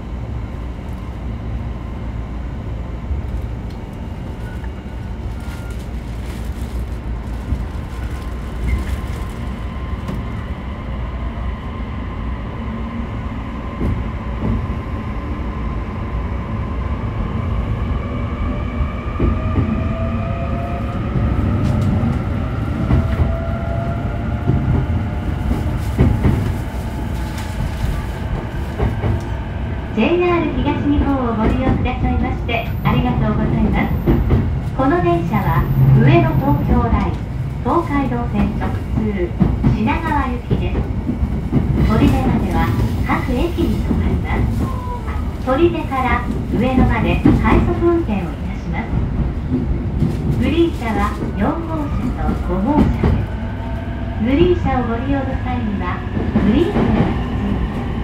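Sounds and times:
train wheels knocking on track: 0:24.4 - 0:26.6, 0:33.9 - 0:34.6.

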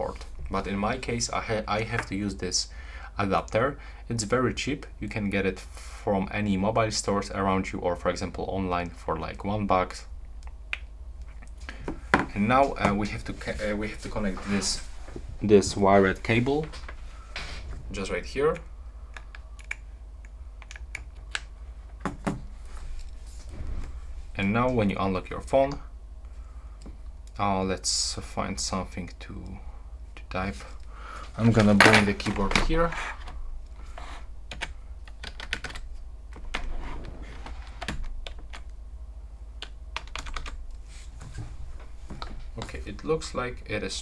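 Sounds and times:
computer keyboard typing: 0:19.2 - 0:19.8, 0:34.5 - 0:36.7, 0:39.6 - 0:40.6.

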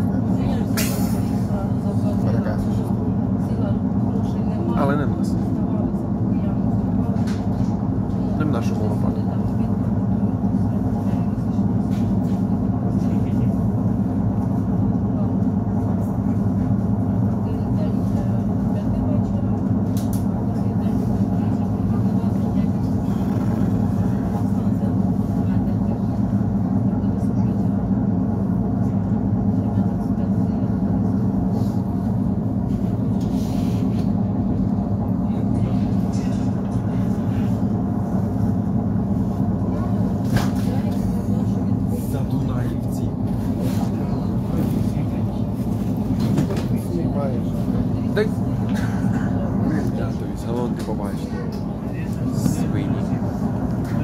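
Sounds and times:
train rumble inside carriage: 0:00.0 - 0:54.0.

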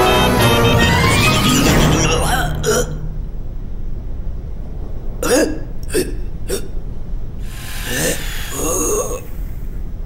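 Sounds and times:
low steady hum: 0:01.7 - 0:10.0.

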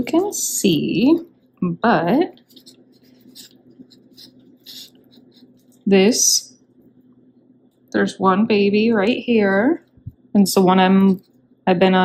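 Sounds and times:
fingertips scratching in potting mix: 0:02.2 - 0:05.9.

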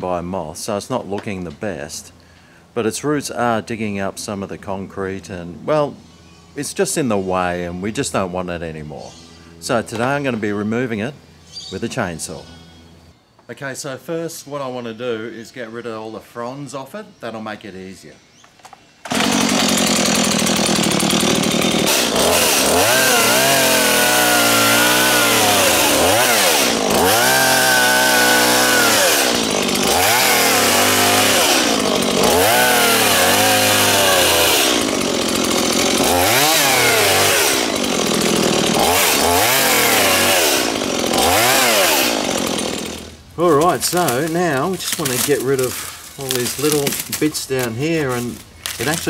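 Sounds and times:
chainsaw revving: 0:19.1 - 0:49.0.

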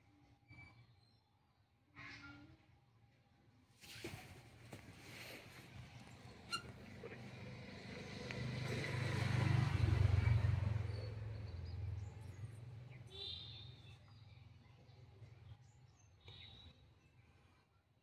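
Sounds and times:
vehicle passing by: 0:05.2 - 0:13.1.

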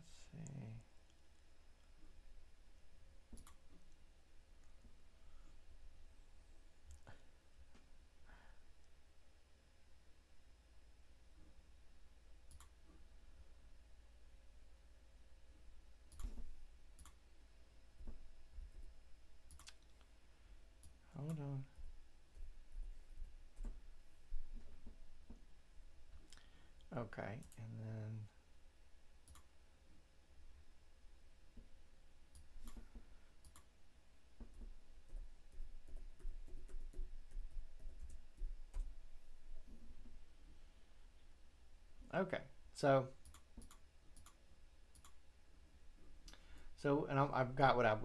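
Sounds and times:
mouse clicks: 0:03.3 - 0:03.6, 0:29.2 - 0:29.5, 0:43.2 - 0:45.2
computer mouse clicks: 0:03.3 - 0:03.7, 0:12.5 - 0:12.8, 0:16.1 - 0:16.4, 0:17.0 - 0:17.2, 0:19.5 - 0:20.1, 0:29.2 - 0:29.5, 0:32.3 - 0:33.7, 0:43.2 - 0:45.2.

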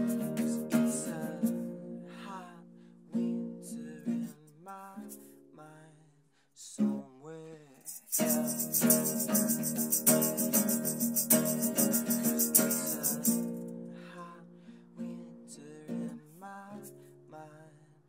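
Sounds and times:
classical guitar strummed: 0:00.0 - 0:05.5, 0:08.2 - 0:17.4
man singing: 0:00.0 - 0:18.0
fast bright rattle: 0:07.9 - 0:13.6.

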